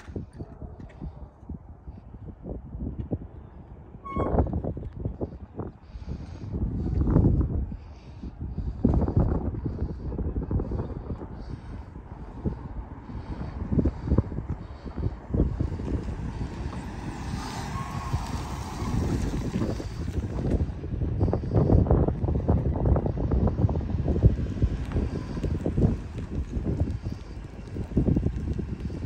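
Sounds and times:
wind buffeting microphone: 0.0s - 29.0s
van engine driving past: 14.9s - 21.2s.

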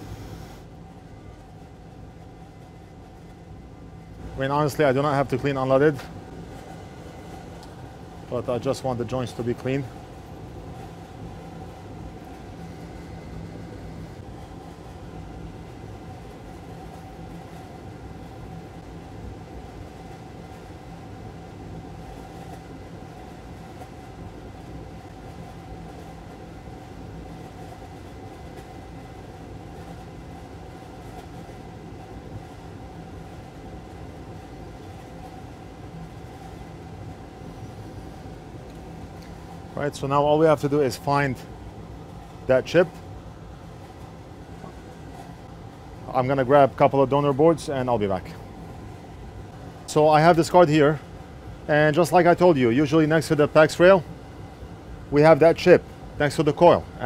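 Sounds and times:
small motor humming: 0.0s - 0.7s.

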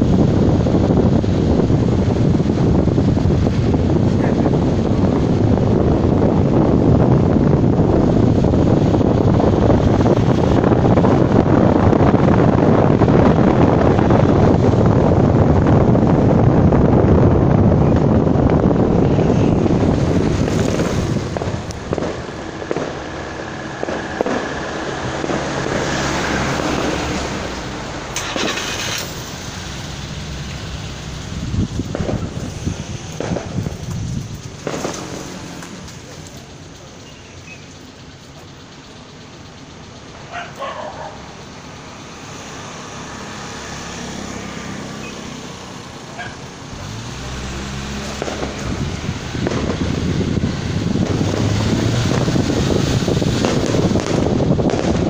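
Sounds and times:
wind and road noise: 0.0s - 55.0s
sharp cracks: 19.3s - 38.5s, 45.7s - 55.0s.

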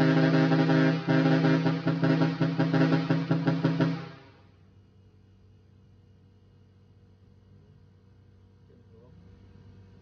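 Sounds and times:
pulsing trumpet horns: 0.0s - 4.6s.

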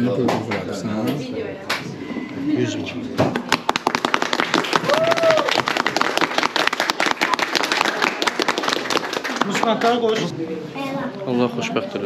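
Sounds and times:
group of people clapping: 0.2s - 0.7s, 3.3s - 10.2s.

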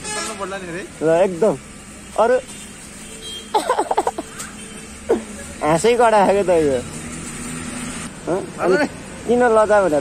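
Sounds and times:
man laughing: 3.5s - 4.4s.

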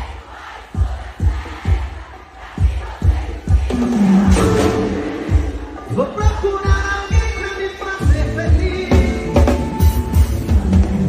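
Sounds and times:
bass drum beat: 0.0s - 11.0s
crowd singing and shouting: 0.0s - 11.0s
live band music: 3.4s - 11.0s.

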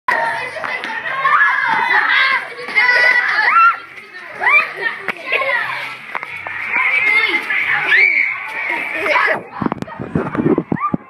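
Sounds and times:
children shouting: 0.1s - 11.0s.

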